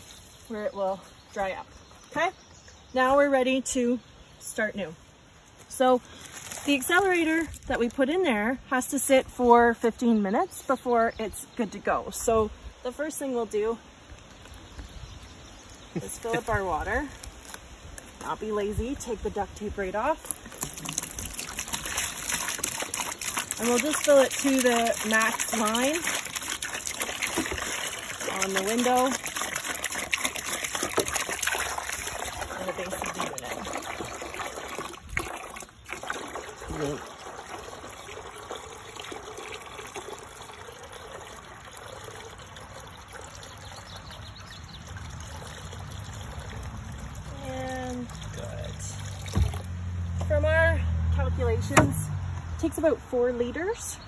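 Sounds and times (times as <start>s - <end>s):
water pouring into plastic container: 6.1s - 8.1s, 14.2s - 49.8s.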